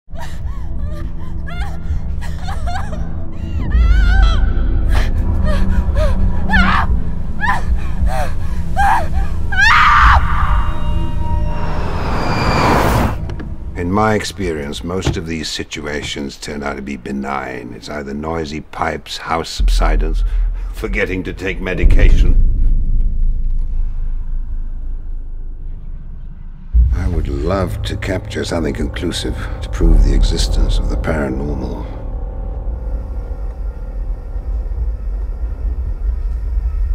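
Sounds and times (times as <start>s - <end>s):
woman gasping sobs and cries: 0.1s - 9.5s
low droning horror score: 0.2s - 14.7s, 19.6s - 36.9s
rising whoosh: 11.2s - 13.7s.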